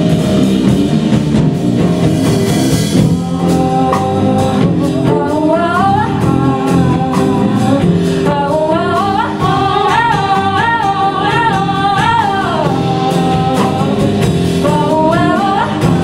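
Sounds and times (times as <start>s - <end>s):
live band playing: 0.0s - 16.0s
woman singing: 2.9s - 16.0s.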